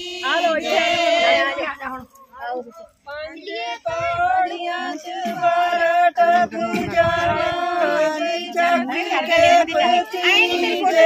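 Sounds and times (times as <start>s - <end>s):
women singing folk song: 0.0s - 2.0s, 3.2s - 11.0s.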